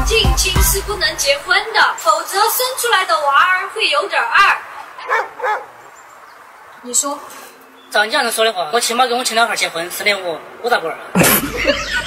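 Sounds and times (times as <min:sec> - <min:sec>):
dog barking: 0:04.9 - 0:05.8.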